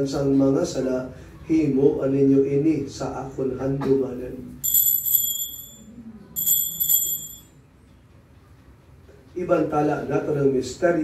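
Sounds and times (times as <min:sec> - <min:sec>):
small altar bell ringing: 0:04.6 - 0:07.6.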